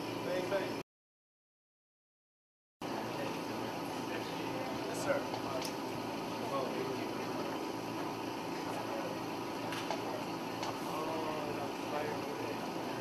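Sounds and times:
steady background hum: 0.0 - 0.8, 2.8 - 13.0
murmur of people talking: 2.8 - 13.0.

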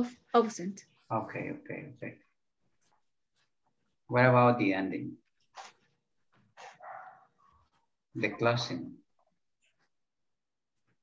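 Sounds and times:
dog barking faintly: 6.6 - 8.8.

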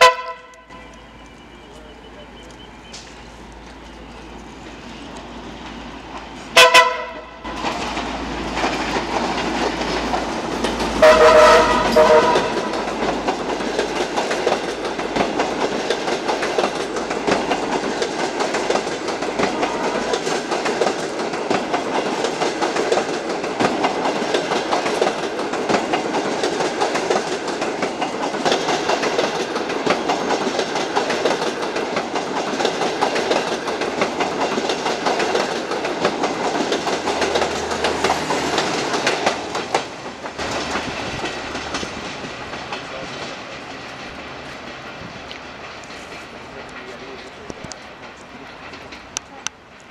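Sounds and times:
train wheels clacking over rail joints: 0.0 - 49.9.

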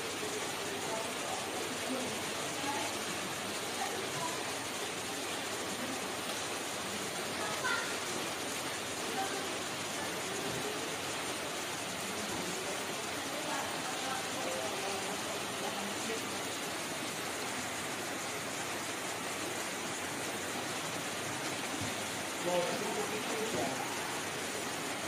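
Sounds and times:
steady rain hissing on paving: 0.0 - 25.0.

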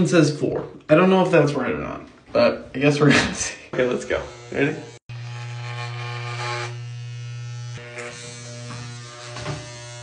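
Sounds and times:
electric hair clipper buzzing: 3.8 - 10.0.

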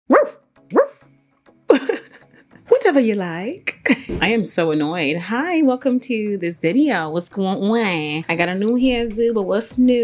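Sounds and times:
dog barking: 0.1 - 1.0.

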